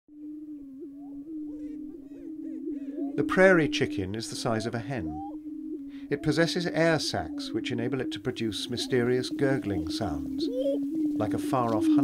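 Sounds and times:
prairie chickens booming drone: 0.2 - 12.0
rising and falling bird calls: 0.2 - 12.0.

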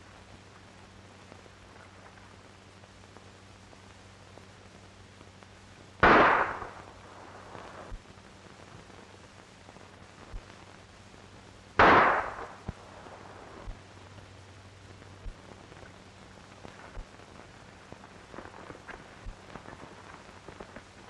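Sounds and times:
revolver shots: 6.0 - 6.8.

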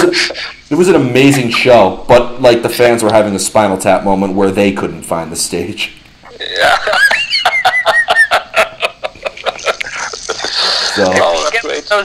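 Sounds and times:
people laughing over phone line: 6.4 - 11.2.

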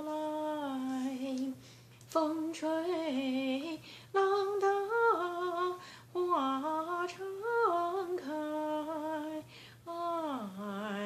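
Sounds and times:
woman singing folk melody: 0.0 - 11.0
woman breathing: 3.8 - 4.1, 5.8 - 6.1, 9.4 - 9.9.

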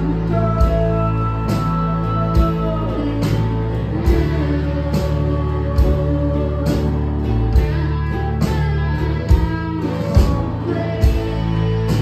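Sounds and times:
acoustic and electric guitar: 0.0 - 12.0
held bass notes: 0.0 - 12.0.

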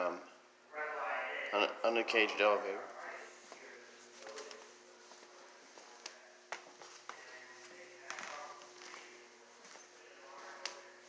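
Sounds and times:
steady hum: 0.0 - 11.0
faint voices: 0.7 - 11.0
footsteps on tile floor: 3.1 - 11.0.

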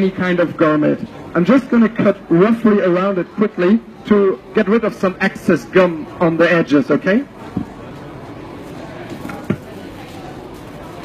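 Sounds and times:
crowd babble: 0.0 - 11.0.

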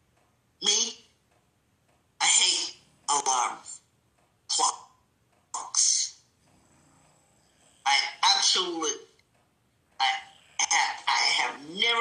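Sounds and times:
person's voice: 0.6 - 1.2, 2.2 - 3.9, 4.5 - 4.9, 5.6 - 6.2, 7.9 - 9.2, 10.0 - 12.0.

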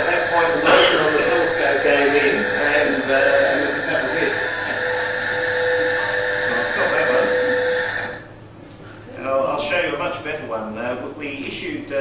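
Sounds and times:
hum with held tone: 0.0 - 9.4.

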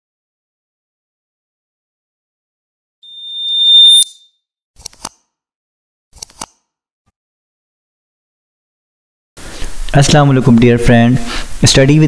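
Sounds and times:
high-pitched electronic beep: 3.1 - 4.3.

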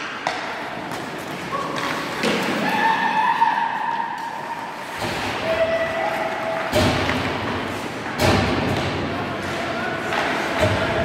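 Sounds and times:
hockey sticks and puck: 0.0 - 11.0
skates on ice: 0.0 - 11.0
heavy thud echoing: 6.7 - 9.1.

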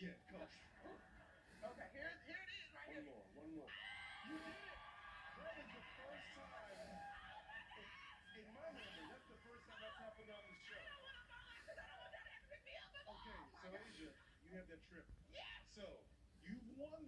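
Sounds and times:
faint speech from television: 0.0 - 17.0.

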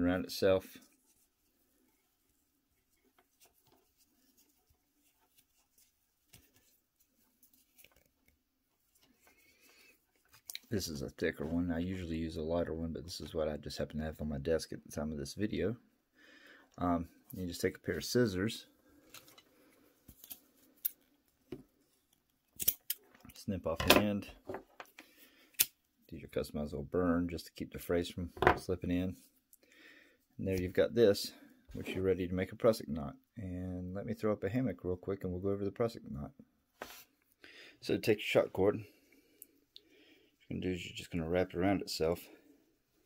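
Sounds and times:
hands handling cord: 0.8 - 11.1, 18.9 - 25.9.

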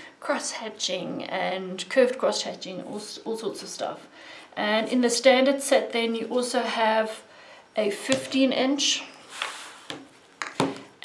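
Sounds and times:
plastic rulers sliding on table: 9.3 - 10.1.

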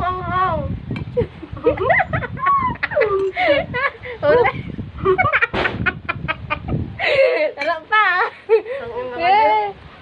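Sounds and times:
women laughing: 1.1 - 9.3.

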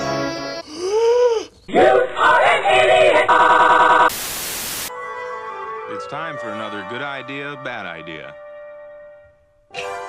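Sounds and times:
loud static hiss: 3.3 - 4.9.

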